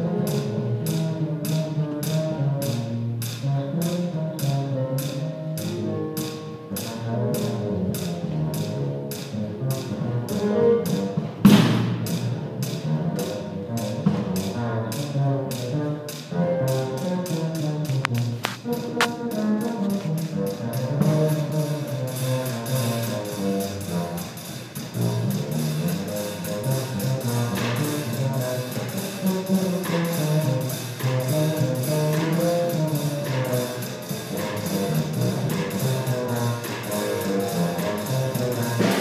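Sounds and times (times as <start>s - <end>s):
jazz combo playing swing: 0.0s - 39.0s.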